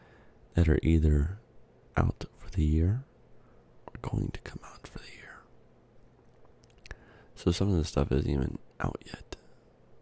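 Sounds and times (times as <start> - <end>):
soft whispered speech: 3.8 - 5.5, 8.2 - 9.5
faint mouth click: 6.2 - 7.0.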